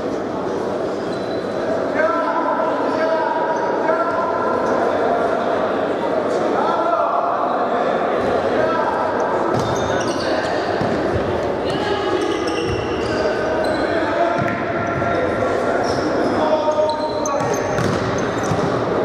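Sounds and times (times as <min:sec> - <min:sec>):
shoes squeaking on court: 0:01.0 - 0:01.6, 0:09.5 - 0:19.0
ball kicked and bouncing: 0:17.4 - 0:18.8.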